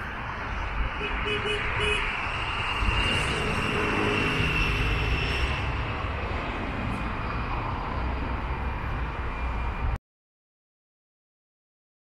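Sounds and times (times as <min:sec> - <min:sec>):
faint high whine: 0:00.0 - 0:08.0
steady mechanical roar: 0:00.0 - 0:10.0.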